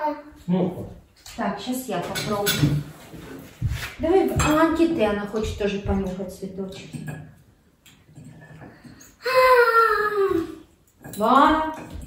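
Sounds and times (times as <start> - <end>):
young child whining cry: 9.2 - 10.6.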